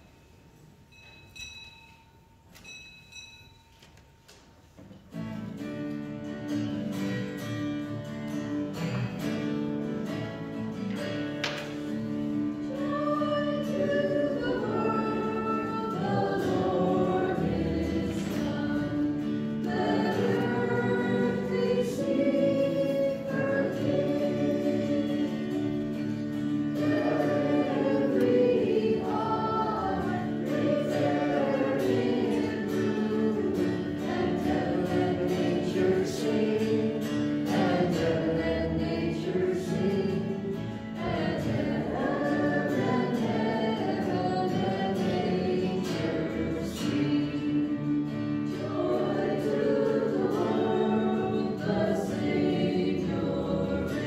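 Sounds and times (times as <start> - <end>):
choir singing a hymn: 8.7 - 54.0.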